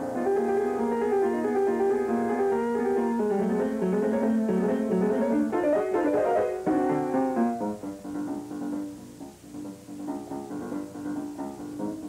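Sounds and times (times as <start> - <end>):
loud piano chord: 0.0 - 12.0
piano fast run of notes: 0.0 - 12.0.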